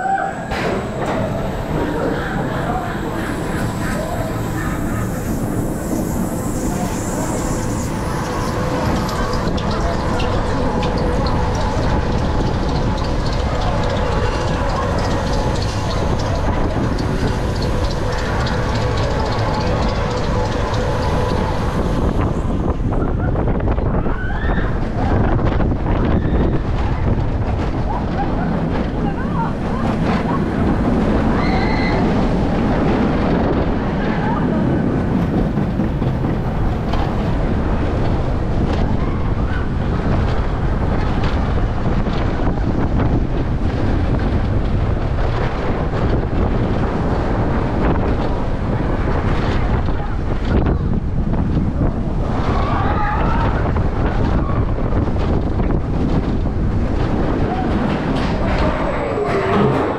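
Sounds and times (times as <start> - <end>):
coaster wheels on steel track: 0.0 - 59.9
wind rushing over microphone: 0.0 - 59.9.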